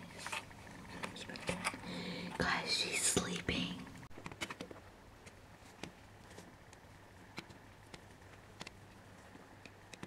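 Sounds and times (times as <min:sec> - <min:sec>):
person whispering: 0:01.0 - 0:03.9.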